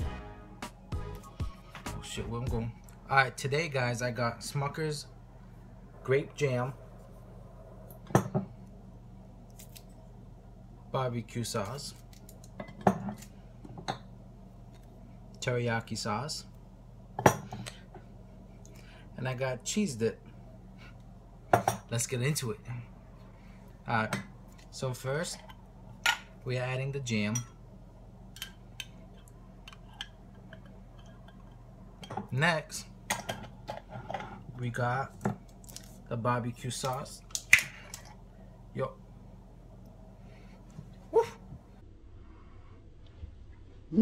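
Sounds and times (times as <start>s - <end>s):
low steady hum: 0.0s - 44.0s.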